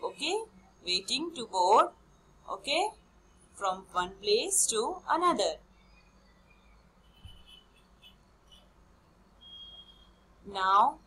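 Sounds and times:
faint high-pitched chirps: 9.4s - 10.3s.

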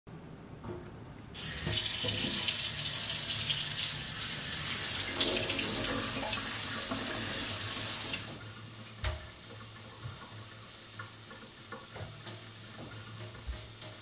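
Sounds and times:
water running from faucet into sink: 1.4s - 14.0s.

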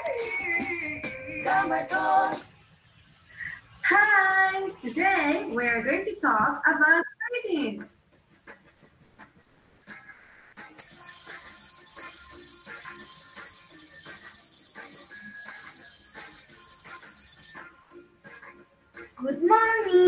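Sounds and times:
light background music: 0.0s - 20.0s
cartoon alarm clock bell ringing: 10.8s - 17.8s.

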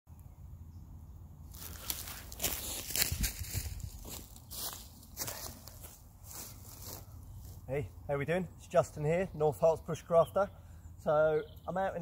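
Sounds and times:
footsteps on leaf litter: 1.5s - 7.7s.

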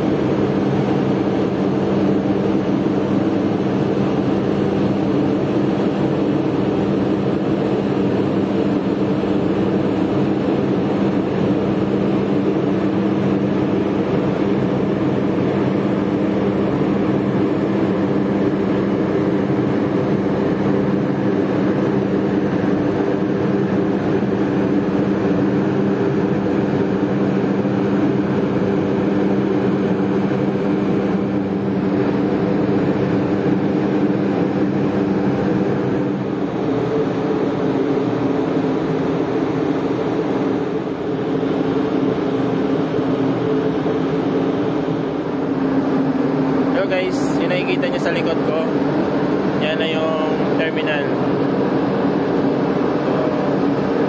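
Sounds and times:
ship engine droning: 0.0s - 54.0s.

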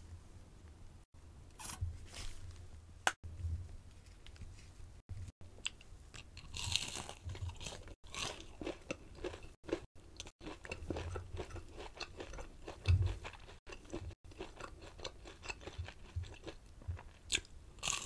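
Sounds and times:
chewing crispy fried food: 6.2s - 18.0s.

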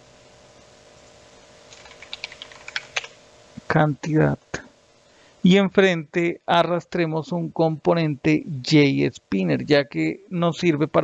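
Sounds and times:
computer keyboard typing: 1.7s - 3.2s.

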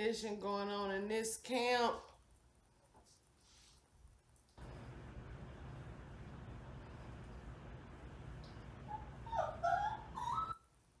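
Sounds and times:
dog whining: 8.8s - 10.8s.

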